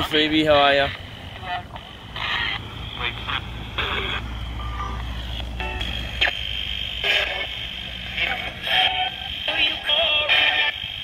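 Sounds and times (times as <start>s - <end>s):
chopped radio singing and voices: 0.0s - 11.0s
radio scanning through stations: 0.8s - 11.0s.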